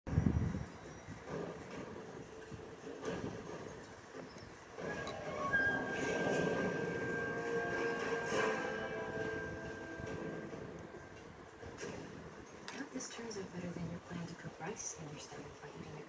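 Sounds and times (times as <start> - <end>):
held steady tones: 4.2 - 16.0.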